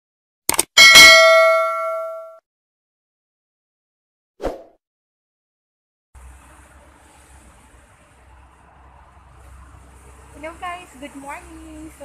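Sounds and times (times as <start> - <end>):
bell-like ding: 0.8 - 2.4.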